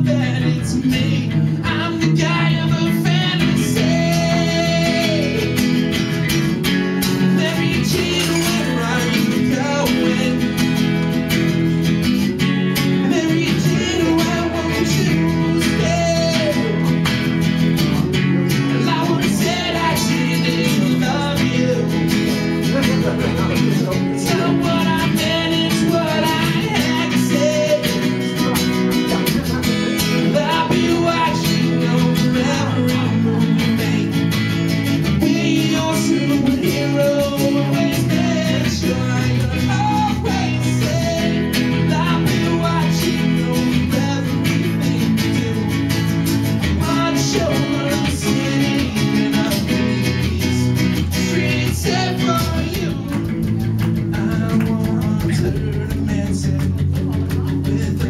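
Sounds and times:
acoustic guitars strummed and picked: 0:00.0 - 0:58.0
man singing into a microphone: 0:00.0 - 0:58.0.

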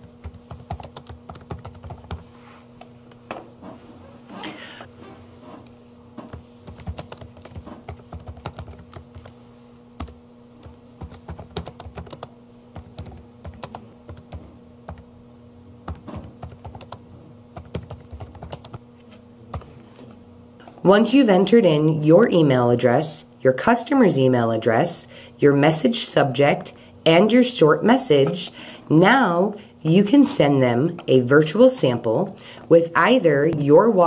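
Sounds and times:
faint steady hum: 0:00.0 - 0:34.0
typing on keyboard: 0:00.2 - 0:02.2, 0:06.6 - 0:09.3, 0:11.0 - 0:15.0, 0:15.9 - 0:17.0, 0:17.6 - 0:18.8.

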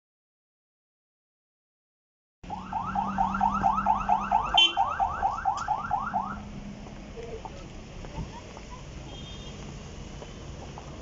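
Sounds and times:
car alarm siren whooping: 0:02.4 - 0:06.4.

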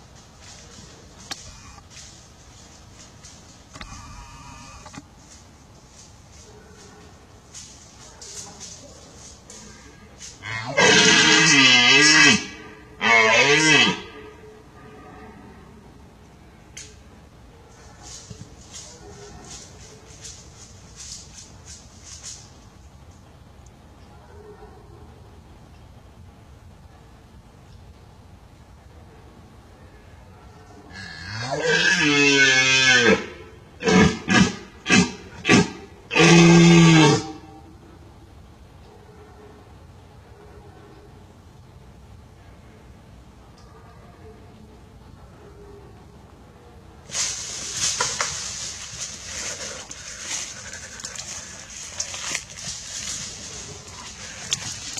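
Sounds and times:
red deer rutting roars: 0:10.4 - 0:14.3, 0:30.9 - 0:37.5.

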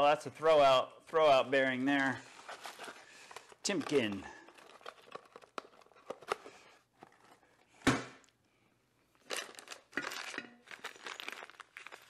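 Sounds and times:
plastic bag crinkling: 0:02.5 - 0:07.4, 0:09.2 - 0:12.0.

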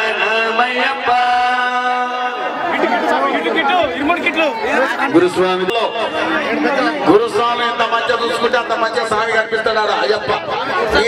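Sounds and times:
devotional chanting: 0:00.0 - 0:02.5
crowd of voices talking: 0:00.0 - 0:11.0.

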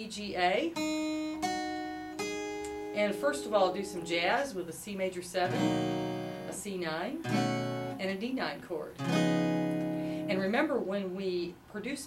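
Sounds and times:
acoustic guitar notes ringing: 0:00.6 - 0:10.8.

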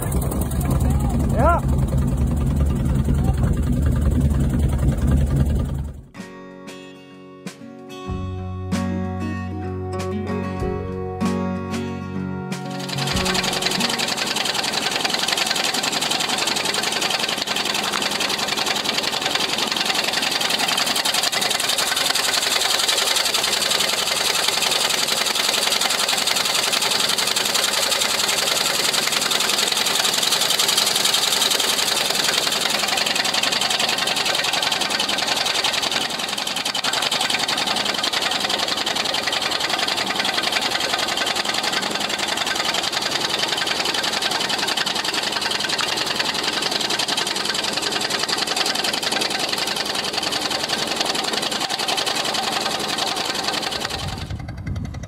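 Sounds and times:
boat engine clattering: 0:00.0 - 0:06.1, 0:12.7 - 0:55.0.

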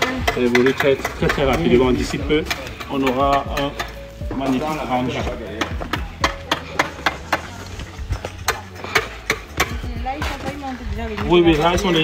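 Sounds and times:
knocks on concrete blocks: 0:00.0 - 0:04.0, 0:05.3 - 0:10.5.

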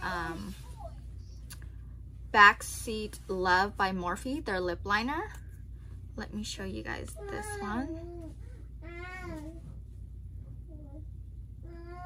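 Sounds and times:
young child whining: 0:07.2 - 0:09.7, 0:10.7 - 0:12.0.

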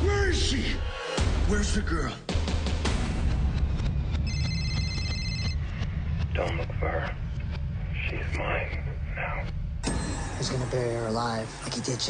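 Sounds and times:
low rumble: 0:03.3 - 0:11.7
telephone ringing: 0:04.2 - 0:05.6.

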